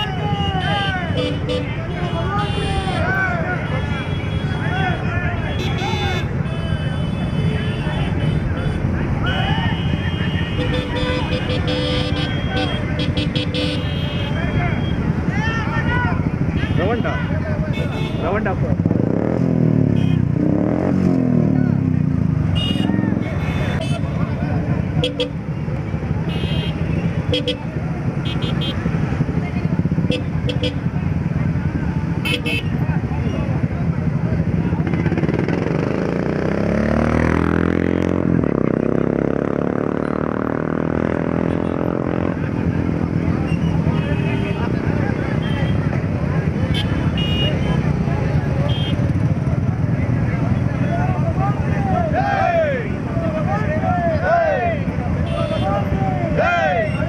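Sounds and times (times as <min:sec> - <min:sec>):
people shouting: 0:00.0 - 0:06.2, 0:09.2 - 0:13.0, 0:50.8 - 0:57.0
horns tooting: 0:00.0 - 0:19.2, 0:19.8 - 0:21.4, 0:22.4 - 0:33.6, 0:40.0 - 0:57.0
motorcycles running at low speed: 0:00.0 - 0:57.0.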